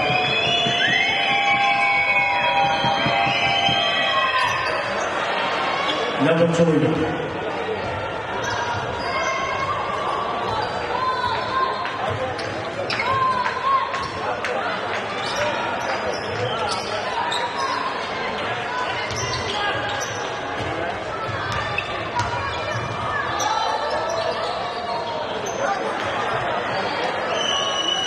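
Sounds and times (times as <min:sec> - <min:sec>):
sneaker squeaks: 0:00.0 - 0:05.2, 0:07.8 - 0:11.4, 0:12.1 - 0:14.3, 0:15.1 - 0:18.2, 0:18.8 - 0:28.0.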